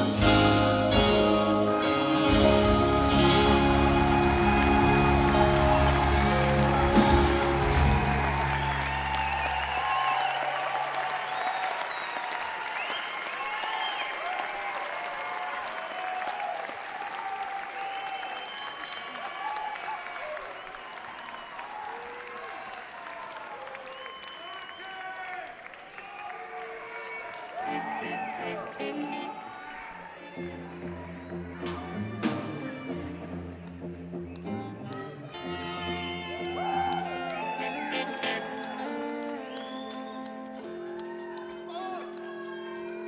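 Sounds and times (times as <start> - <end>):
rock band closing chord: 0.0 - 9.8
audience applauding and cheering: 0.0 - 43.0.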